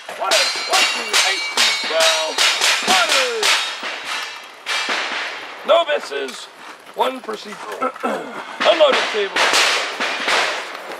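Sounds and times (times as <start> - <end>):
sharp cracks with ringing tails: 0.0 - 6.4, 8.5 - 10.9.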